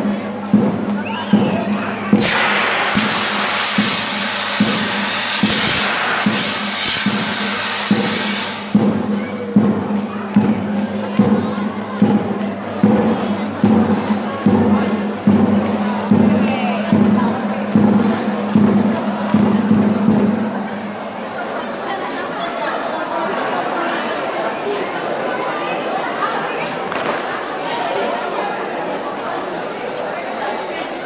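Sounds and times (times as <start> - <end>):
crowd cheering: 0.0 - 31.0
marching band playing: 0.1 - 12.0
fire extinguisher hissing: 2.2 - 8.8.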